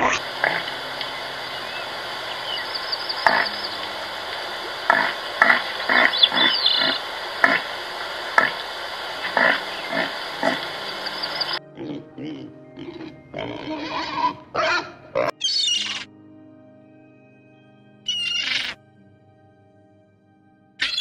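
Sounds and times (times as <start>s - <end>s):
background hiss: 0.0s - 11.6s
deer grunting calls: 0.0s - 16.0s
faint high bird chirps: 0.6s - 4.5s, 5.4s - 7.0s, 9.4s - 11.6s, 15.4s - 16.0s, 18.1s - 18.8s, 20.8s - 21.0s.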